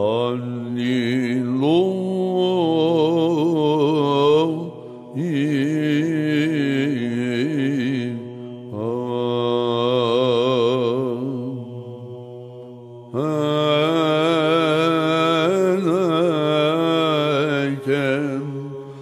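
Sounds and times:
man chanting: 0:00.0 - 0:19.0.

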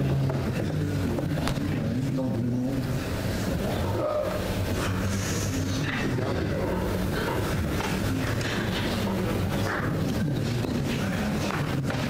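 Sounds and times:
voices murmuring: 0:00.0 - 0:12.0.

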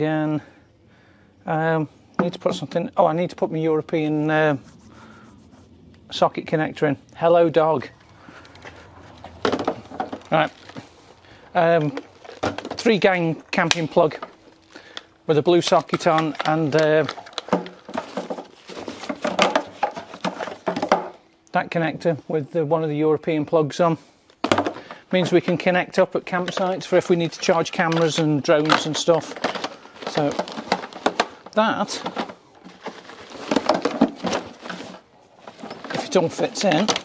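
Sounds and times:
objects clattering into plastic crate: 0:02.2 - 0:02.9, 0:07.8 - 0:21.4, 0:24.4 - 0:37.0
cable rustling: 0:07.2 - 0:21.2, 0:24.3 - 0:37.0.

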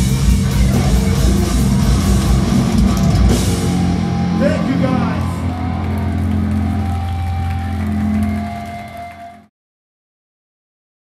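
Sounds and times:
distorted electric guitar and bass chord: 0:00.0 - 0:09.4.

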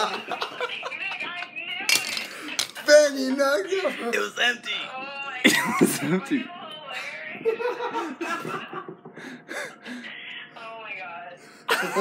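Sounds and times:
man laughing: 0:00.0 - 0:01.1, 0:05.4 - 0:06.5, 0:07.4 - 0:09.4, 0:11.7 - 0:12.0.

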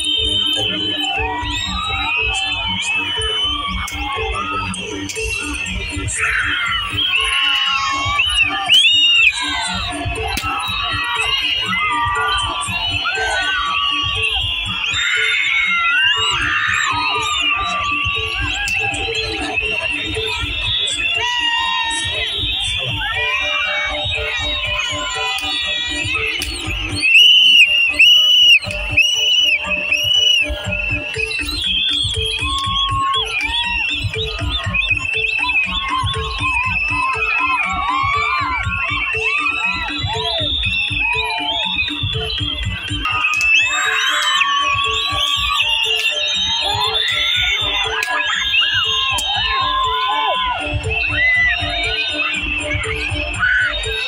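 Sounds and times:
crowd shouting and cheering: 0:00.0 - 0:54.0
drums beating steady rhythm: 0:00.0 - 0:54.0.

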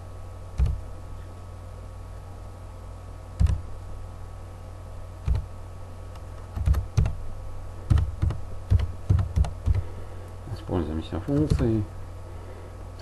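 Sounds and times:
keyboard typing: 0:03.4 - 0:03.6, 0:05.3 - 0:05.5, 0:06.5 - 0:07.2, 0:07.9 - 0:09.8, 0:11.3 - 0:11.7.

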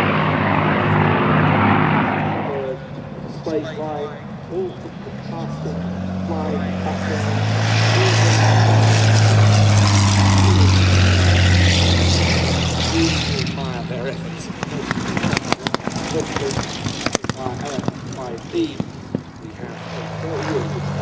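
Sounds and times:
propeller plane engine passing low: 0:00.0 - 0:21.0.

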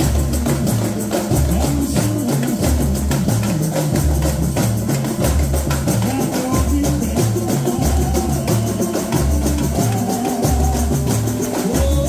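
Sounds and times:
samba percussion band: 0:00.0 - 0:12.0.

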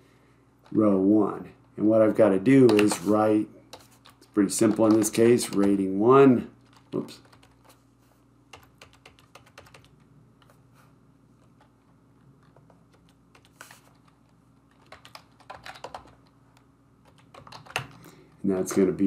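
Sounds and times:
faint low hum: 0:00.0 - 0:19.0
computer keyboard typing: 0:02.6 - 0:03.1, 0:03.7 - 0:05.9, 0:06.6 - 0:07.8, 0:08.5 - 0:10.5, 0:12.4 - 0:16.3, 0:17.0 - 0:18.0.

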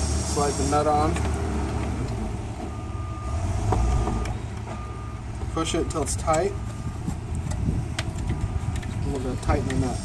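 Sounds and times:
low engine rumble: 0:00.0 - 0:10.0
reversing alarm beep: 0:02.6 - 0:07.0
plastic fitting clicks: 0:07.3 - 0:09.8.

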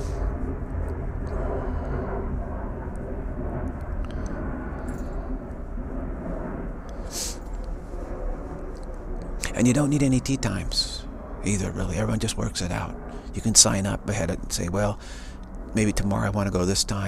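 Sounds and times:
low rumbling background noise: 0:00.0 - 0:17.0.

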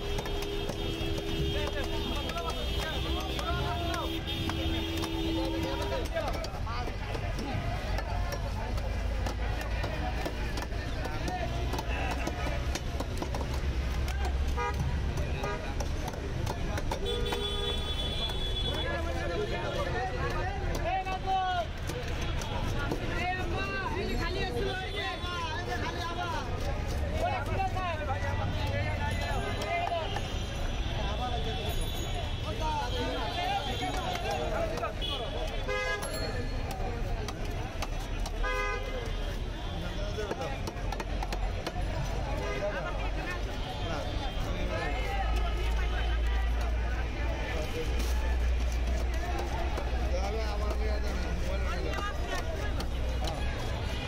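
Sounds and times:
vehicle horns honking: 0:00.0 - 0:06.1, 0:14.5 - 0:15.7, 0:17.0 - 0:19.0, 0:34.9 - 0:36.5, 0:38.4 - 0:39.9
sharp clicks and knocks: 0:00.0 - 0:19.1, 0:40.1 - 0:42.3
chatter of many voices: 0:00.0 - 0:54.0
street traffic rumbling: 0:00.0 - 0:54.0
men talking: 0:00.6 - 0:54.0
vehicle horn toots: 0:17.0 - 0:18.8, 0:35.0 - 0:36.3, 0:38.4 - 0:39.1.

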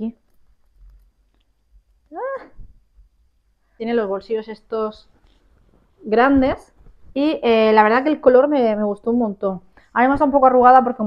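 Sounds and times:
fabric rustle: 0:05.0 - 0:07.7.

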